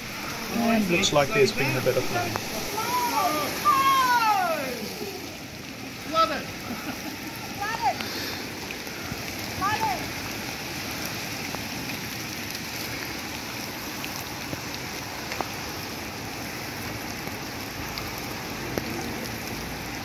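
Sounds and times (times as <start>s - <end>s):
heavy rain on a flooded road: 0.0s - 20.0s.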